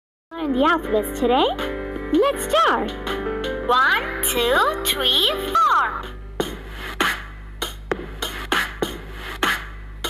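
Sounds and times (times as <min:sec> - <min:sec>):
drum beat through tv speaker: 0:01.4 - 0:10.0.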